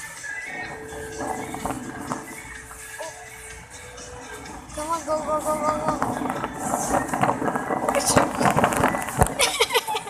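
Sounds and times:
background music over sound system: 0:00.0 - 0:10.0
shopping cart rattling: 0:04.6 - 0:10.0.

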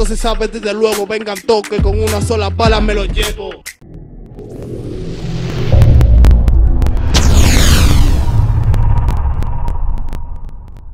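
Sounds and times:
deep bass rumble: 0:03.8 - 0:10.9
sweeping whoosh: 0:03.9 - 0:10.5.

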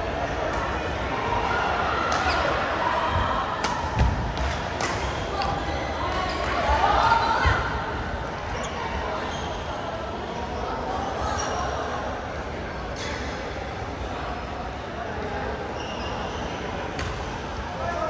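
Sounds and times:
players chattering: 0:00.0 - 0:18.0
racket hitting shuttlecock: 0:03.6 - 0:05.2.

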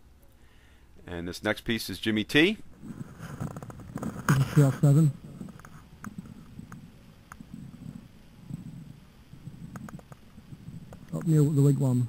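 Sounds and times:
faint low rumble: 0:02.6 - 0:12.0
small clicks: 0:09.5 - 0:11.4.

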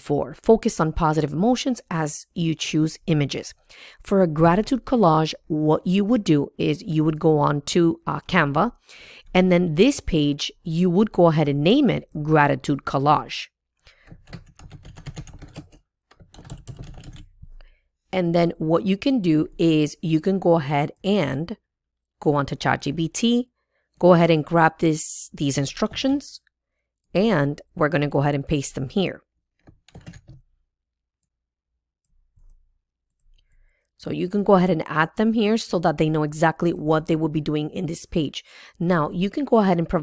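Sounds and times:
computer keyboard typing: 0:13.9 - 0:17.4, 0:29.6 - 0:30.4.

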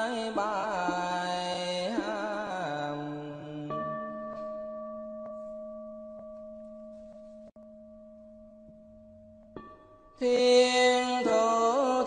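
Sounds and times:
chanted mantra: 0:10.2 - 0:12.0.

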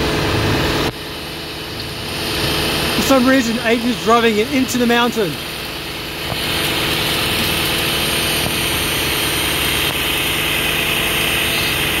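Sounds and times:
higher whirring: 0:00.0 - 0:12.0
utility vehicle engine running: 0:00.0 - 0:12.0.

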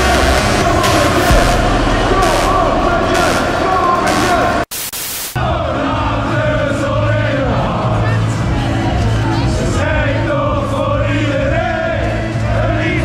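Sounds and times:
football crowd chanting: 0:00.0 - 0:04.7, 0:05.4 - 0:13.0
loud music: 0:00.0 - 0:08.2.

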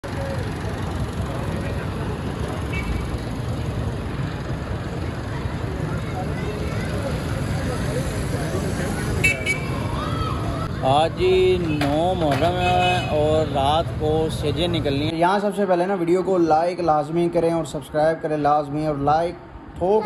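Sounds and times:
motorcycle engines: 0:00.0 - 0:20.0
traffic rumble: 0:00.0 - 0:20.0.

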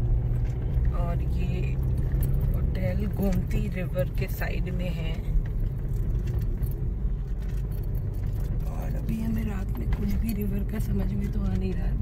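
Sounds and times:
car interior road rumble: 0:00.0 - 0:12.0.

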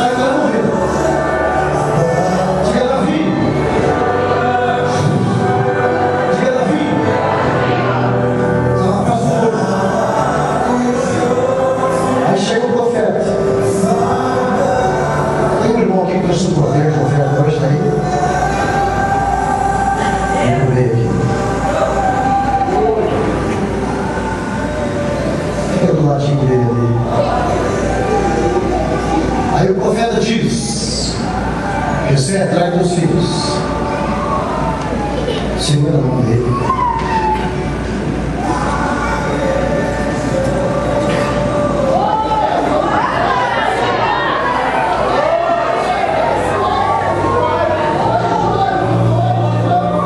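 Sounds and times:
many voices praying aloud: 0:00.0 - 0:50.0.

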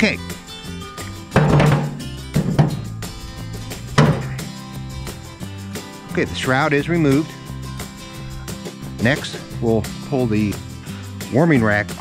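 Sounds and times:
background music: 0:00.0 - 0:12.0
metal grill lid thunks: 0:01.3 - 0:03.1, 0:03.7 - 0:04.5.

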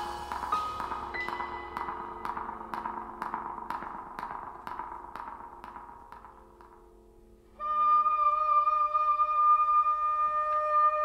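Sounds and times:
quiet jazz ensemble music: 0:00.0 - 0:11.0.

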